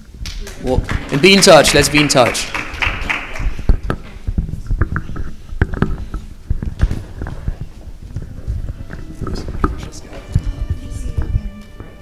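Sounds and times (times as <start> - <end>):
microphone handling knocks and thumps: 3.5 - 11.5.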